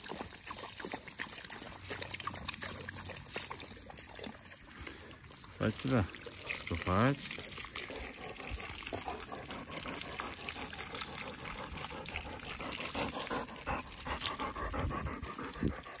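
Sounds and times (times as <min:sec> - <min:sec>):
hose spraying water: 0:03.2 - 0:15.8
dog panting: 0:07.4 - 0:16.0.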